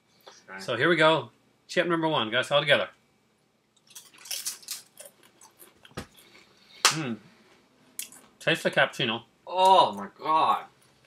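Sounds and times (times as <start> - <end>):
potato chips crunching: 3.8 - 6.4.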